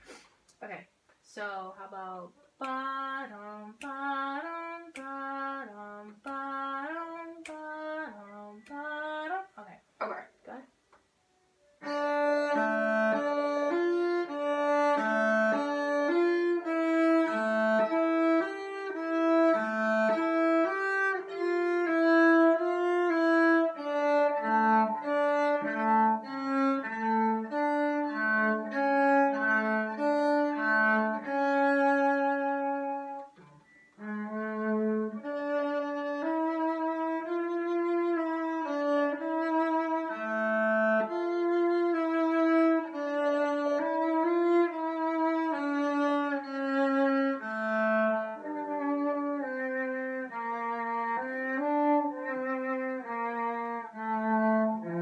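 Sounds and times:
solo cello bowed melody: 0:01.9 - 0:10.2, 0:11.2 - 0:55.0.

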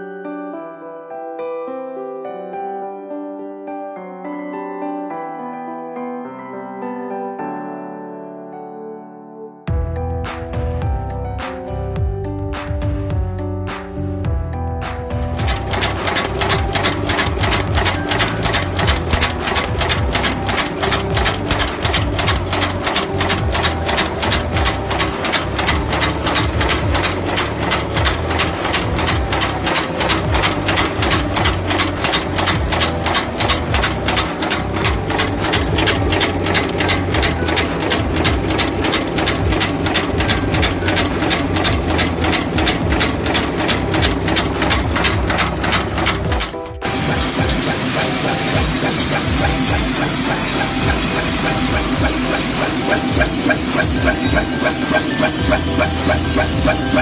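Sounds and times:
dense irregular machine noise: 0:15.2 - 0:57.0
heading machine clattering: 0:15.2 - 0:57.0.

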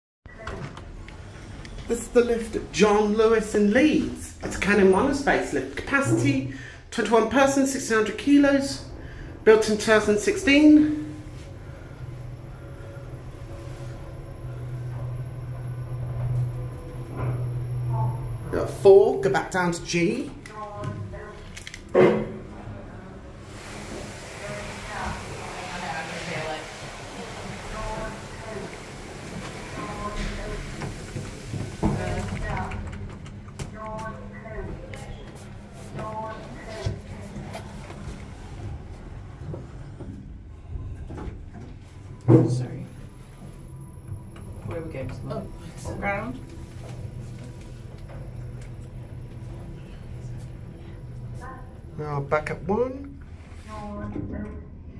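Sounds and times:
lift car humming: 0:01.0 - 0:21.3, 0:22.4 - 0:53.4
background voices: 0:22.5 - 0:38.2.

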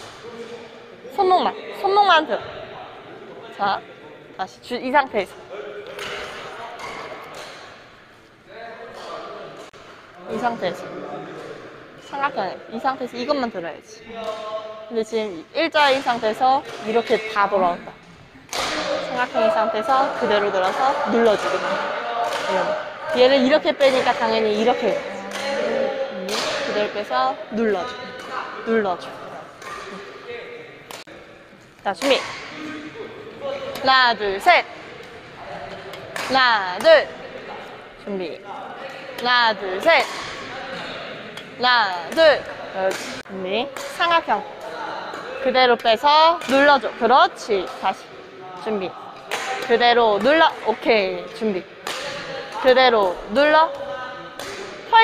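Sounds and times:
coach talking: 0:00.0 - 0:55.0.

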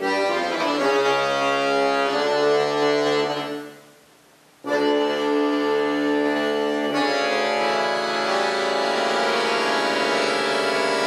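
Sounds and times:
button accordion playing: 0:00.0 - 0:03.8, 0:04.6 - 0:11.0.

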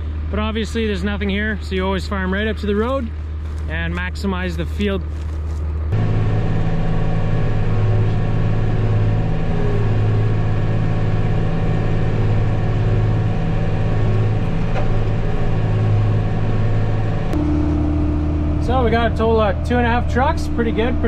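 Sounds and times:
tractor and harvester drone: 0:00.0 - 0:21.0.

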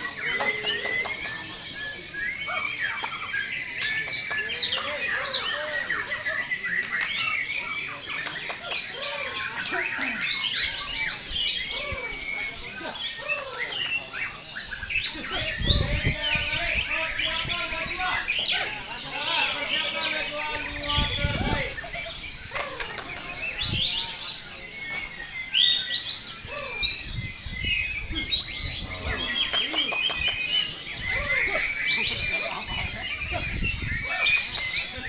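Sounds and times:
songbirds singing: 0:00.0 - 0:35.0.

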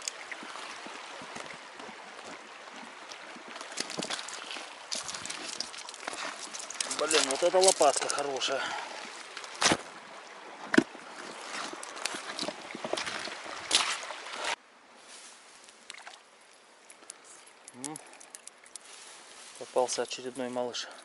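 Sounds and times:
rushing river water: 0:00.0 - 0:21.0.

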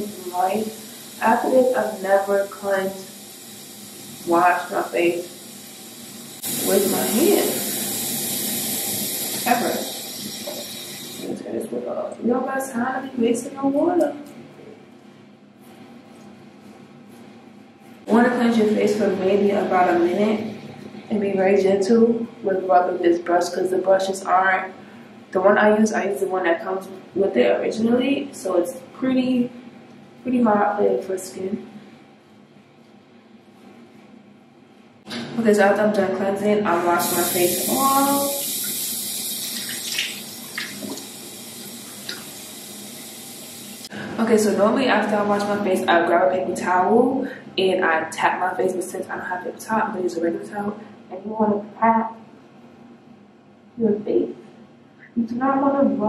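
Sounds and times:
facial brush whirring: 0:00.0 - 0:11.3
tap water running into sink: 0:09.1 - 0:11.3, 0:37.0 - 0:43.9
water splashing on face: 0:39.5 - 0:42.4.

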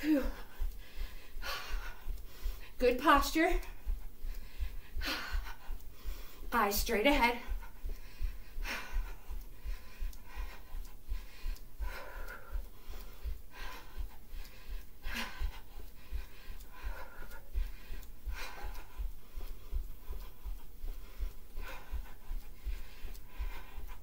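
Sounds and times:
woman breathing hard: 0:00.0 - 0:02.9, 0:03.6 - 0:06.5, 0:07.4 - 0:24.0.

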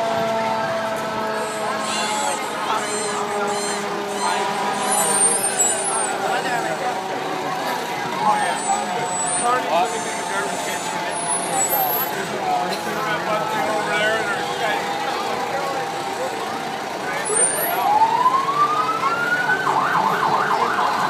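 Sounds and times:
crowd chatter: 0:00.0 - 0:21.0
fire truck siren: 0:00.0 - 0:21.0.

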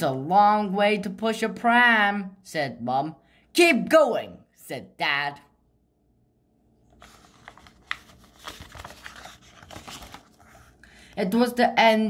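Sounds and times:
paper pages turning: 0:06.9 - 0:10.9.

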